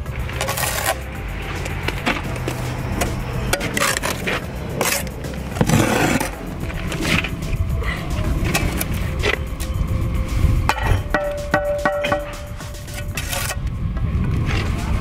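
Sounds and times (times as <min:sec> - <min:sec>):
trowel scraping mortar: 0:00.0 - 0:07.6, 0:12.0 - 0:13.7
background music: 0:00.0 - 0:15.0
trowel knocking against stone: 0:10.7 - 0:13.5.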